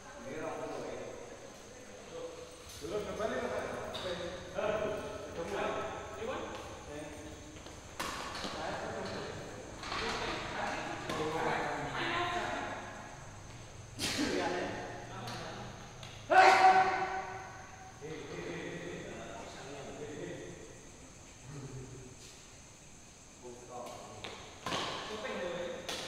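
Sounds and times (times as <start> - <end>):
people talking and calling out: 0.0 - 24.2.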